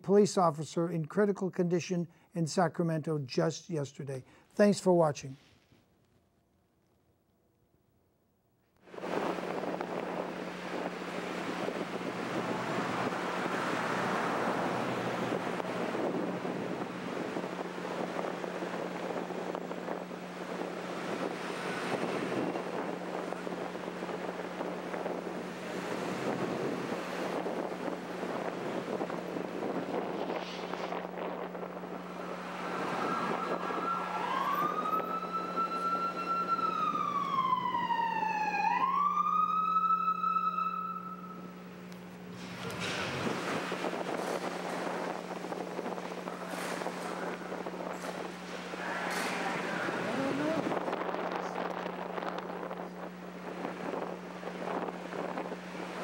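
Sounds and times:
wind buffeting microphone: 8.9 - 56.0
traffic noise: 9.0 - 38.1, 40.7 - 56.0
police siren wailing: 32.0 - 41.6, 46.3 - 55.6.

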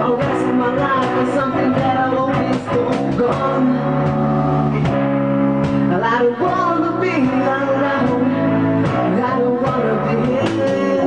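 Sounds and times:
live rock band playing: 0.0 - 11.0
person singing: 0.0 - 11.0.

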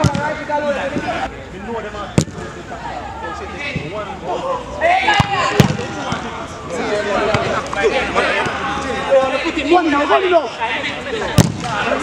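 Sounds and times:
players shouting: 2.2 - 12.0
football kicked with thuds: 11.4 - 11.7.

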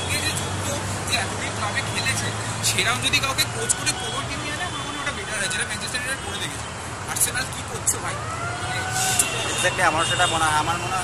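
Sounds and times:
men talking: 0.0 - 11.0
road traffic hum: 0.0 - 11.0.

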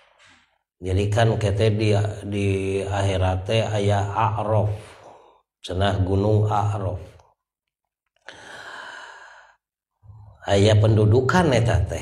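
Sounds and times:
man breathing close to microphone: 4.8 - 5.5, 8.2 - 10.4.

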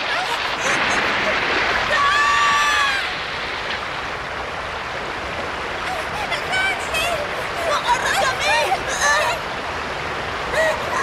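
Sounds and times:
heavy rain: 0.0 - 11.0
rushing stream water: 0.0 - 11.0
child wailing: 1.9 - 3.2, 10.5 - 11.0.

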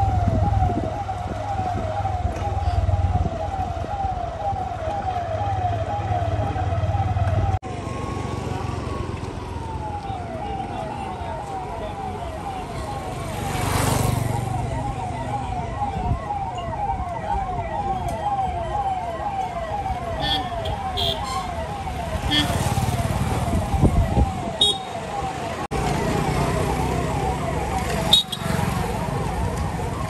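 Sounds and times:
police siren yelping: 0.0 - 30.0
street traffic: 0.0 - 30.0.

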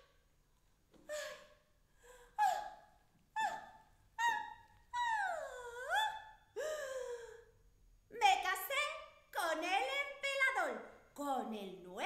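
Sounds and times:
woman's high-pitched vocal cries: 3.4 - 7.2.

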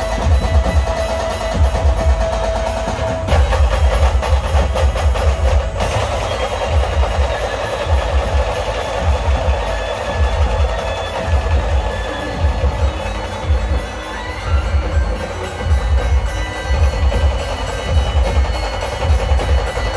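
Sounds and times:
fast clattering drum roll: 0.0 - 14.1
amplified drum band music: 0.0 - 19.9
heavy booming bass beats: 0.0 - 19.9.

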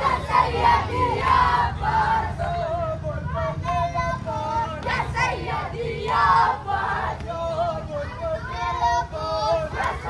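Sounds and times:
crowd chanting a lament: 0.0 - 10.0.

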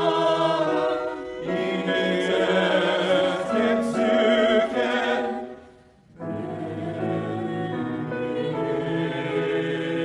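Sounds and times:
mixed choir singing chords: 0.0 - 10.0.

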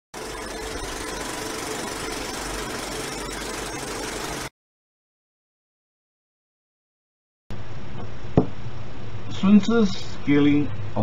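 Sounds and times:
film projector whirring: 0.1 - 4.5.

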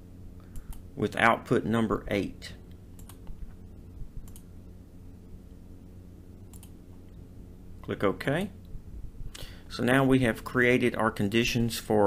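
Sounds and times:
faint low hum: 0.0 - 12.0
computer mouse clicks: 0.4 - 0.8, 2.7 - 3.4, 4.2 - 4.5, 6.5 - 6.8.

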